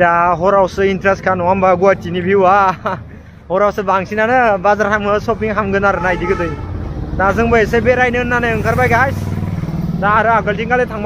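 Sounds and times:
man's voice: 0.0 - 6.6, 7.2 - 9.3, 10.0 - 11.0
vehicle engine running: 4.7 - 11.0.

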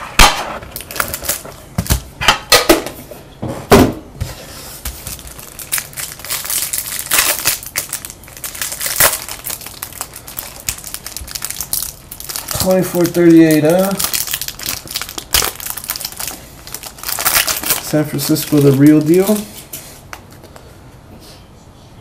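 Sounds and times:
wrapper and cards rustling: 4.4 - 20.7.

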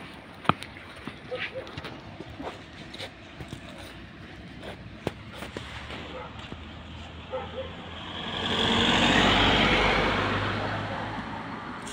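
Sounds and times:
vehicle passing close by: 5.5 - 11.9.

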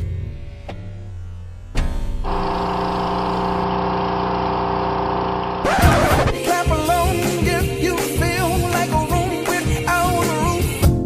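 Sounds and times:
song with beat and singing: 5.7 - 11.0.

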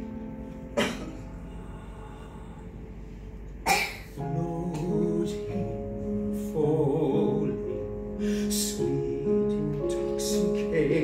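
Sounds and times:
faint sustained accompaniment notes: 0.0 - 3.6, 4.2 - 11.0
person coughing: 0.8 - 1.3, 3.7 - 4.2.

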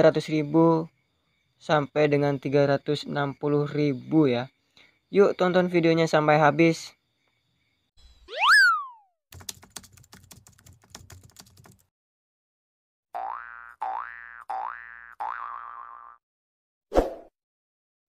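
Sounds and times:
boing-like glide: 8.3 - 9.0, 13.2 - 16.2
rising swoop tones: 8.3 - 9.0
keyboard typing clicks: 9.4 - 11.8.

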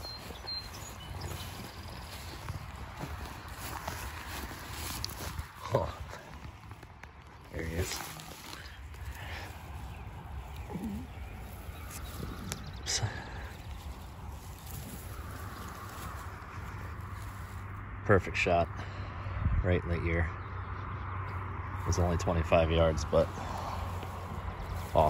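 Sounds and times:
dry grass rustling and crackling: 0.0 - 18.0, 21.2 - 25.0.

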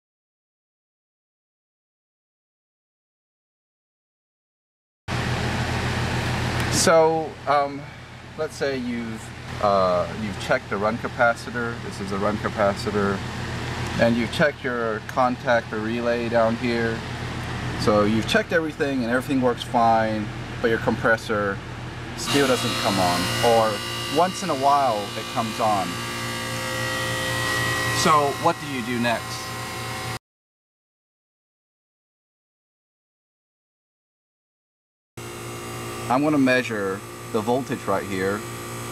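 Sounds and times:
air conditioner unit running: 5.1 - 30.2, 35.2 - 38.9
low electrical hum: 5.1 - 30.2, 35.2 - 38.9
thin high whine: 22.2 - 30.2.

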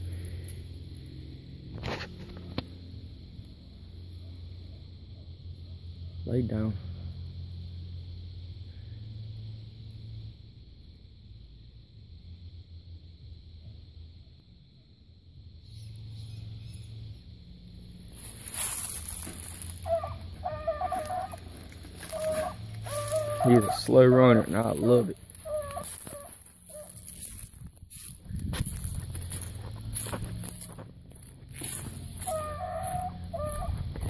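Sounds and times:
low outdoor rumble: 0.0 - 34.0
dog baying: 19.8 - 23.9, 25.4 - 27.1, 32.2 - 33.8.

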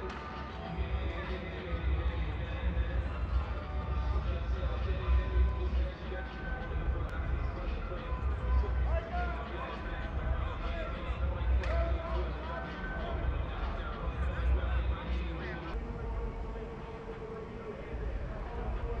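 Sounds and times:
indistinct voices talking: 0.0 - 19.0
steady low rumble: 15.7 - 19.0.

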